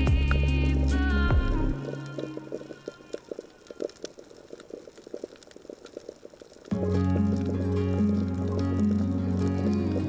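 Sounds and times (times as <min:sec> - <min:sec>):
background music: 0:00.0 - 0:03.6, 0:06.7 - 0:10.0
underwater crackle of clicks: 0:00.2 - 0:00.6, 0:01.8 - 0:10.0.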